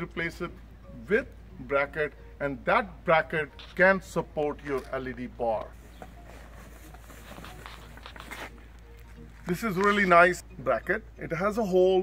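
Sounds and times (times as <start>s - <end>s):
plastic foam wrap crinkling: 6.2s - 10.1s.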